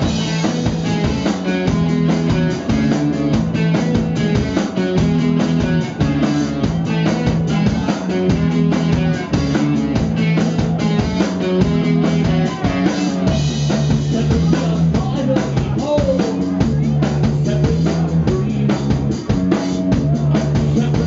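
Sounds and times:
distorted electric guitar: 0.0s - 21.0s
drum kit beat: 0.0s - 21.0s
electric bass: 0.0s - 21.0s.

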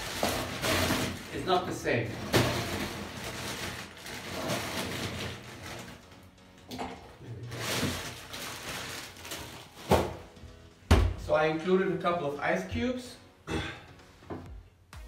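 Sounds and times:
plastic bag of ice crinkling: 0.0s - 6.4s, 7.3s - 10.0s.

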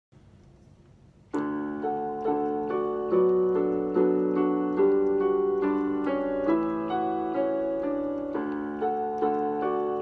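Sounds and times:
electronic keyboard piano: 1.3s - 10.0s.

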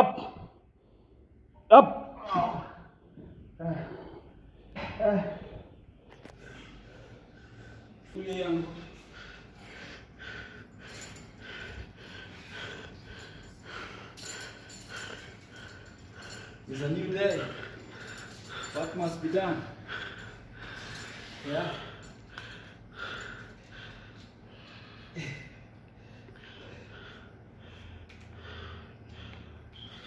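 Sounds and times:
man breathing hard: 3.9s - 30.0s.

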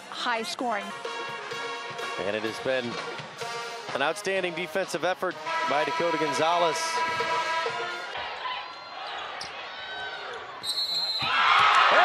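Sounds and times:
arena crowd hum: 5.4s - 12.0s.

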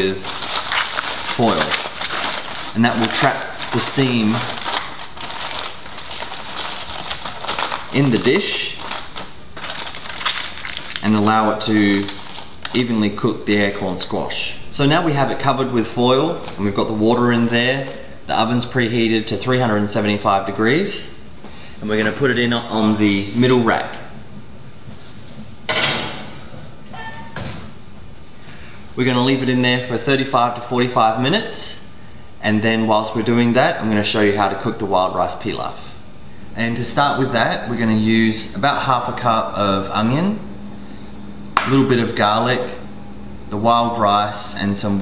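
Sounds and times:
aluminium foil crinkling: 0.0s - 14.0s, 16.2s - 18.1s.

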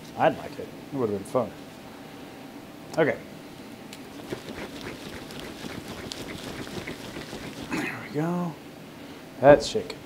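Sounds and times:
jar of soil and water shaken: 4.2s - 7.8s.

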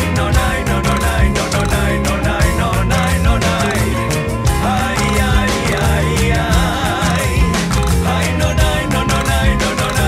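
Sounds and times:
bass guitar and keyboards: 0.0s - 10.0s
drums keeping a steady beat: 0.0s - 10.0s.

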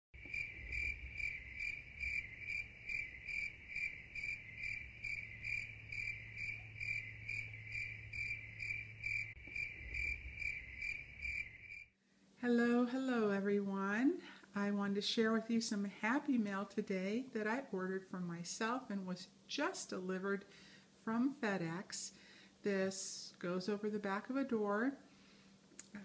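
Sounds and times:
cricket chirping: 0.2s - 11.9s.

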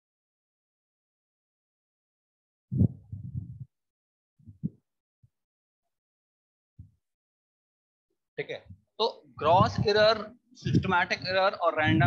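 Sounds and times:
soft low thuds: 2.7s - 3.7s, 4.4s - 4.8s.

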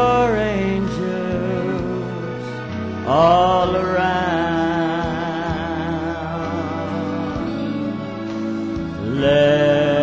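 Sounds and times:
man singing a long note: 0.0s - 8.3s, 9.0s - 10.0s
instrumental accompaniment: 0.0s - 10.0s.

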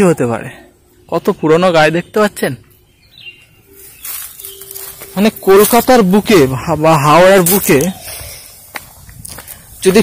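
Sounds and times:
man talking: 0.0s - 2.7s, 5.0s - 8.2s, 9.8s - 10.0s
footsteps on paved path: 2.7s - 10.0s.

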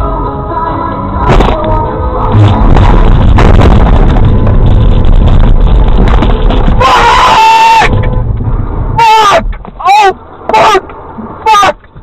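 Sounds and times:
car engine rumble: 0.0s - 12.0s
road noise: 0.0s - 12.0s
person screaming: 6.8s - 7.9s, 9.0s - 10.8s, 11.4s - 11.8s.

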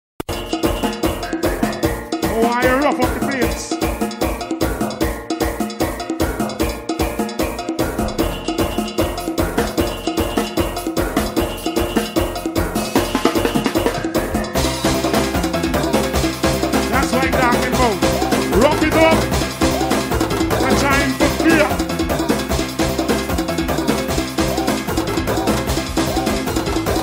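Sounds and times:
drum kit beat: 0.2s - 27.0s
live soca band music: 0.3s - 27.0s
sustained pitched instruments: 6.4s - 23.0s.

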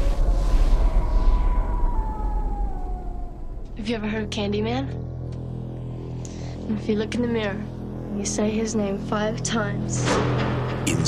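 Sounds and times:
siren-like tone sliding down: 0.0s - 6.2s
deep rumbling drone: 0.0s - 11.0s.

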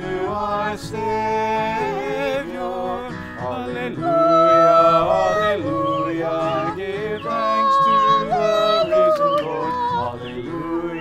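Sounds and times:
man and woman singing a hymn: 0.0s - 11.0s.

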